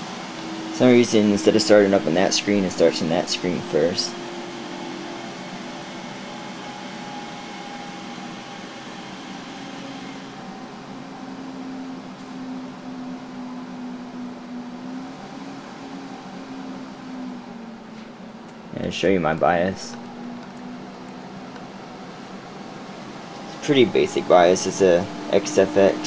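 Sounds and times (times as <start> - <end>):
computer cooling fans whirring: 0.0 - 26.0
low hum dropping in pitch: 18.8 - 26.0.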